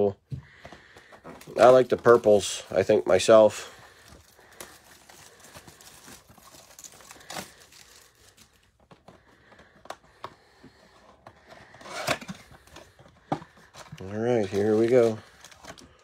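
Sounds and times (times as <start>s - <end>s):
cardboard crinkling and rustling: 0.6s - 16.0s.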